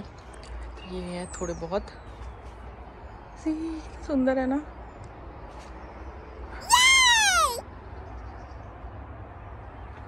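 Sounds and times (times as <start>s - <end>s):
animal call: 6.6s - 7.6s.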